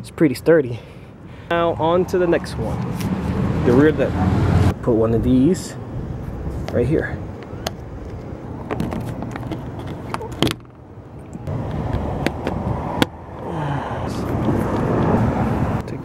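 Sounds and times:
steady outdoor noise: 0.0s - 16.0s.

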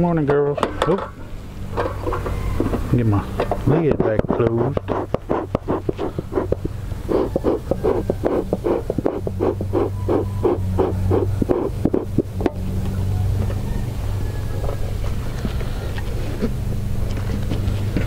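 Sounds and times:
steady low hum: 0.0s - 18.0s
bellows puffing: 4.3s - 12.3s.

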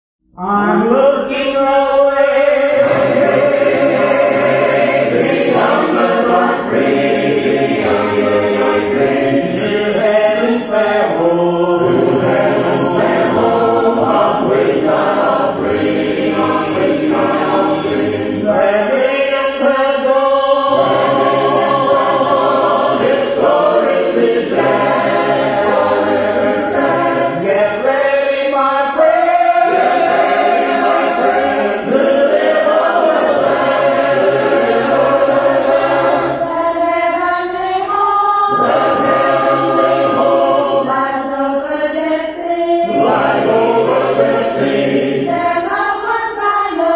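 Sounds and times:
choir singing a cappella: 0.4s - 46.9s.

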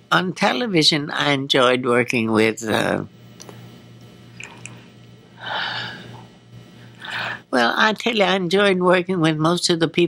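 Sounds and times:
low steady hum: 0.0s - 10.0s
woman breathing in: 5.4s - 6.2s, 6.8s - 7.5s.

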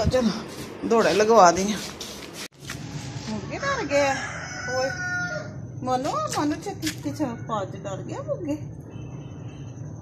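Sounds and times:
rooster crowing: 3.6s - 5.6s.

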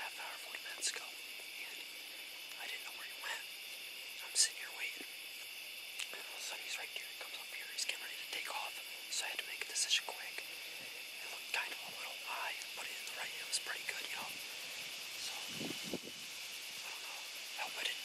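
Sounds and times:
man whispering: 0.0s - 5.1s, 6.0s - 15.6s, 16.8s - 18.0s.

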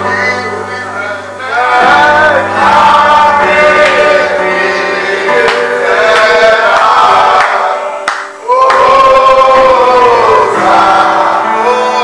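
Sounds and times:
group singing long notes: 0.0s - 12.0s.

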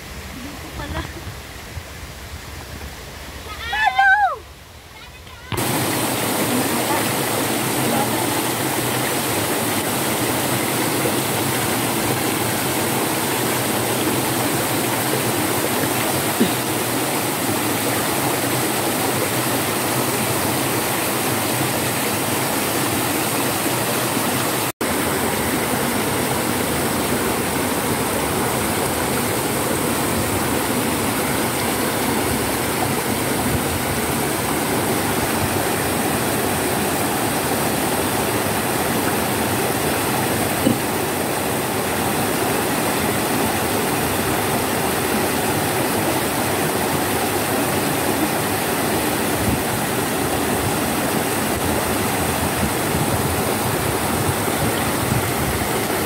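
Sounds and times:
stream rushing over rocks: 0.0s - 56.0s.

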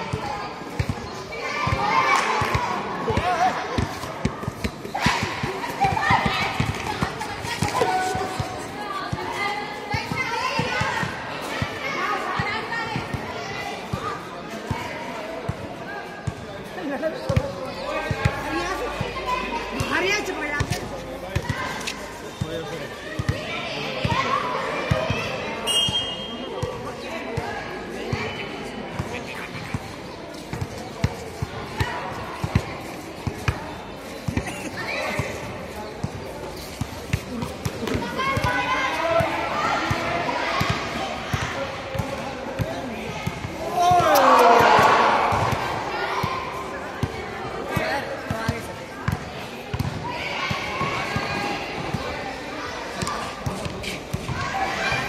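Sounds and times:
girls calling out: 43.8s - 46.6s.

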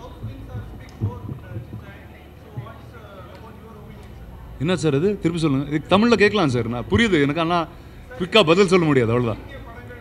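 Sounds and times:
dull low thumps: 0.0s - 2.0s
faint voices: 0.0s - 4.6s.

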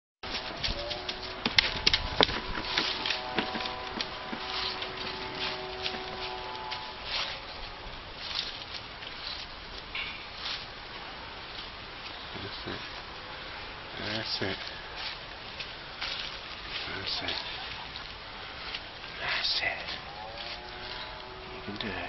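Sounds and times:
dry leaves crackling underfoot: 0.2s - 22.0s
faint steady hum: 0.3s - 22.0s.

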